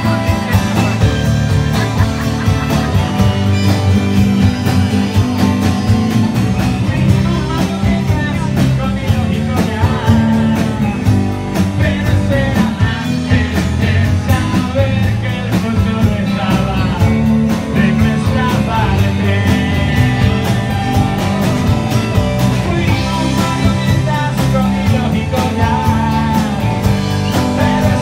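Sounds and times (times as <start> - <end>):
man singing: 0.0 - 2.0, 6.2 - 28.0
live rock band playing: 0.0 - 28.0.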